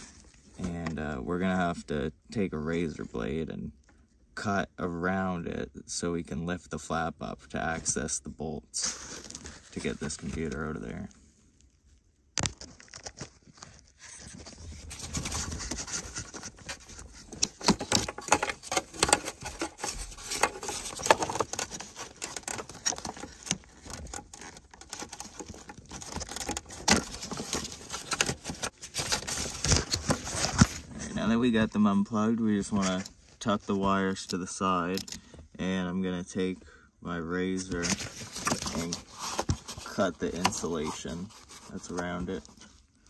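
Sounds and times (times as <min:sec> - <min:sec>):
wire harness rustling: 0:12.7 - 0:31.0.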